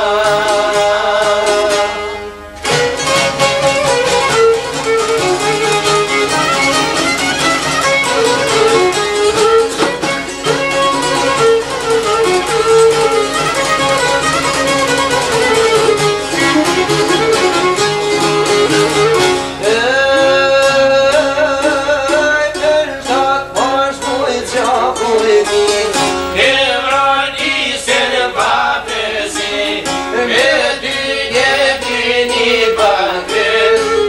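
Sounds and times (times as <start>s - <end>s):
violin melody: 0.0s - 19.7s, 25.5s - 27.5s, 30.6s - 34.0s
strummed lutes: 0.0s - 34.0s.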